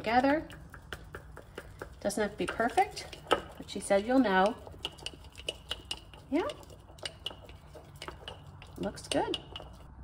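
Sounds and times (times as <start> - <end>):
chopsticks stirring thick dough: 0.0 - 10.0.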